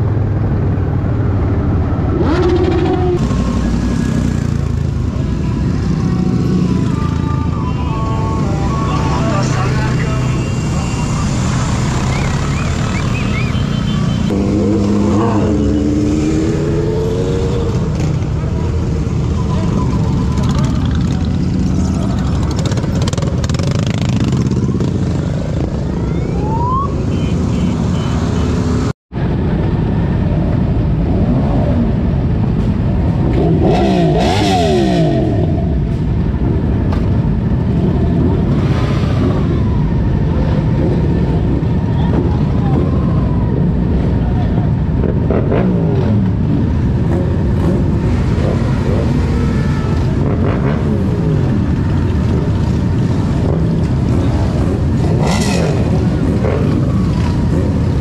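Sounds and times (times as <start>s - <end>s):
motorcycle engines revving: 0.0s - 58.0s
people's voices: 5.3s - 11.4s, 41.8s - 44.8s.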